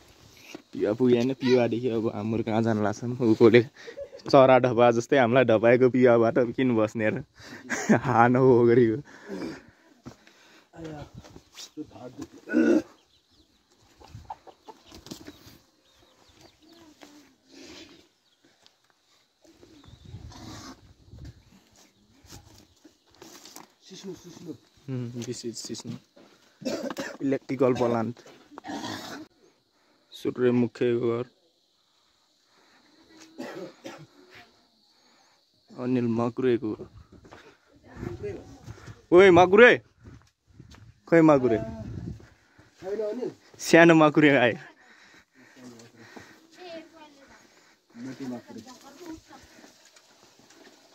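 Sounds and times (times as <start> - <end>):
person coughing: 12.5 - 12.9, 26.6 - 27.2, 33.4 - 34.1
chickens clucking: 13.0 - 16.6.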